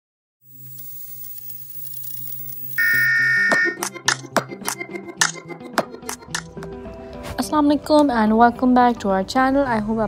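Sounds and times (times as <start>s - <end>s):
steady electronic beep: 0.5s - 3.8s
music with sharp percussive beats: 3.5s - 6.7s.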